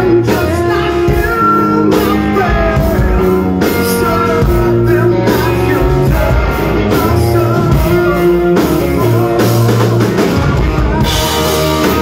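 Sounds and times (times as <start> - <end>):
bass guitar: 0.0 - 12.0
distorted electric guitar: 0.0 - 12.0
drum kit: 0.0 - 12.0
singer singing: 0.0 - 12.0.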